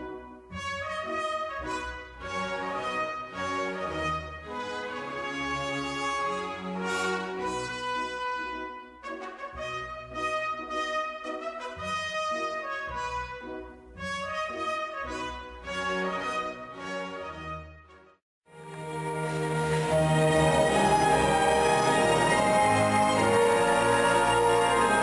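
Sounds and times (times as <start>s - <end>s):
brass music slow chords: 0.0s - 25.0s.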